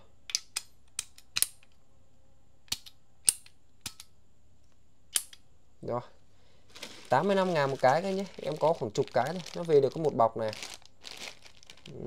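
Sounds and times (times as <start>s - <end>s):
sharp metallic clicks of hose coupling: 0.3s - 1.7s, 2.7s - 4.1s, 5.1s - 5.4s.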